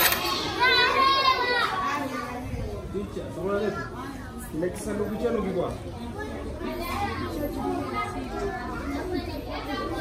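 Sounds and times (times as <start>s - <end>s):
children's high-pitched group call: 0.0s - 2.6s, 6.0s - 10.0s
children chattering: 0.0s - 10.0s.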